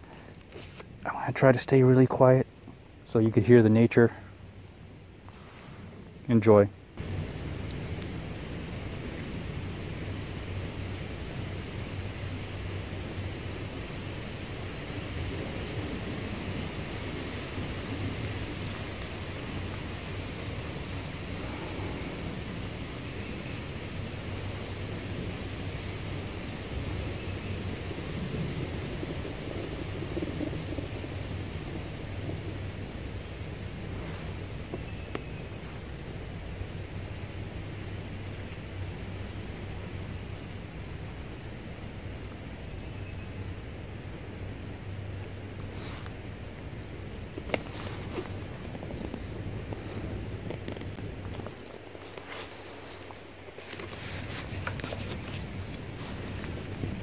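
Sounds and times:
wind noise on microphone: 7.0s - 38.5s, 43.4s - 57.0s
rustling: 45.6s - 57.0s.

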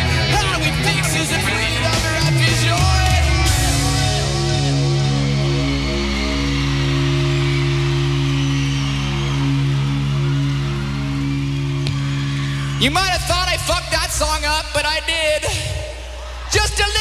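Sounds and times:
electric guitar and bass chord: 0.0s - 12.9s
crowd cheering: 0.0s - 17.0s.

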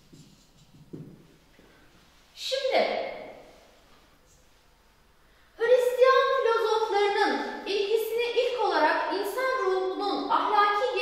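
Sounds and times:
woman lecturing: 2.4s - 3.3s, 5.6s - 11.0s.

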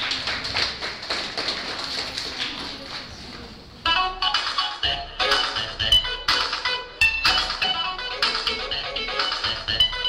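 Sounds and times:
audience clapping: 0.0s - 3.1s
low crowd hubbub: 0.0s - 6.0s.

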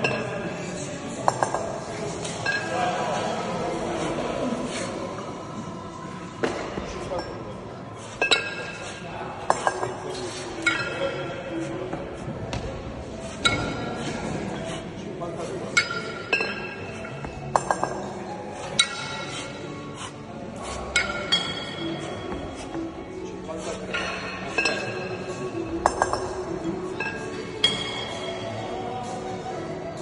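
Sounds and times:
kettlebells clinking: 8.2s - 8.9s, 10.6s - 11.3s, 13.2s - 14.0s, 15.7s - 19.5s, 20.9s - 22.4s, 23.8s - 28.4s.

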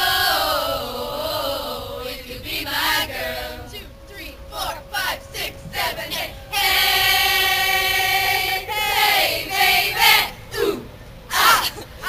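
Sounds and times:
young women chanting in unison: 0.0s - 12.0s.

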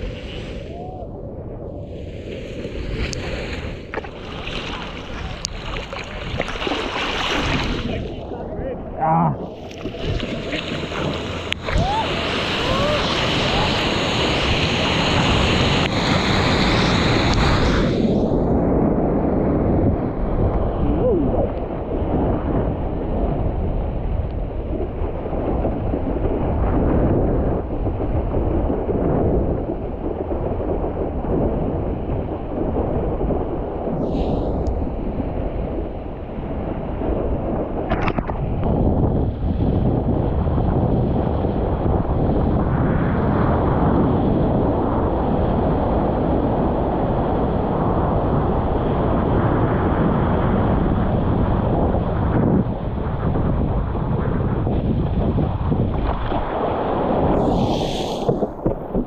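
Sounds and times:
wind buffeting microphone: 0.0s - 59.0s
rushing water: 2.6s - 17.9s.

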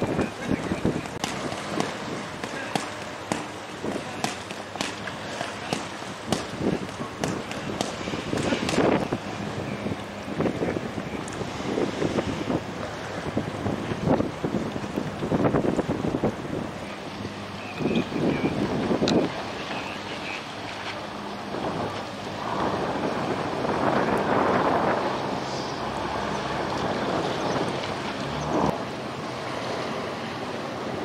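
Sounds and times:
boat engines running: 0.0s - 31.0s
wind gusting on microphone: 0.0s - 31.0s.

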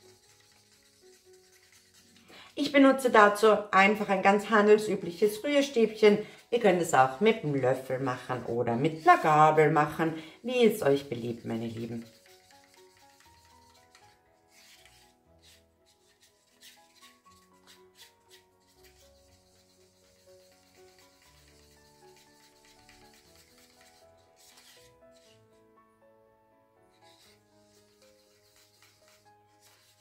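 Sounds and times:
stick scraping paper cup: 0.0s - 3.4s, 5.1s - 25.4s, 27.0s - 30.0s
soft background music: 0.0s - 30.0s.

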